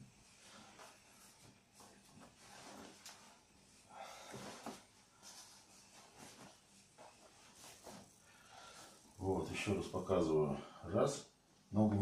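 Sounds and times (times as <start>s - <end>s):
hands rustling on skin and towel: 0.0s - 9.7s.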